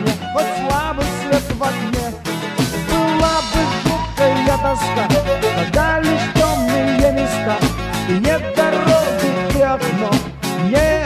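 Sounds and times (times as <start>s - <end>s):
bass: 0.0s - 11.0s
drums: 0.0s - 11.0s
lead melody with bending notes: 2.8s - 9.9s.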